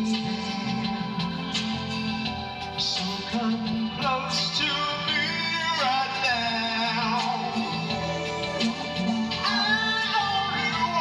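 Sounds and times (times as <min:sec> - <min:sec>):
instrumental backing: 0:00.0 - 0:11.0.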